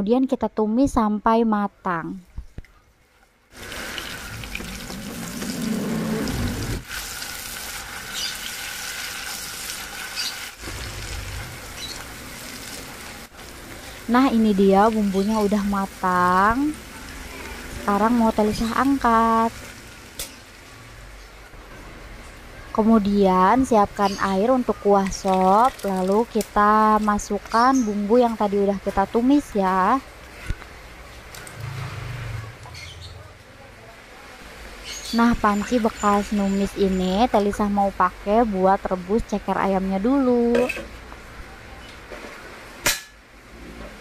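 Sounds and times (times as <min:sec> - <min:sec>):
paste sizzling in oil: 0:06.3 - 0:17.3.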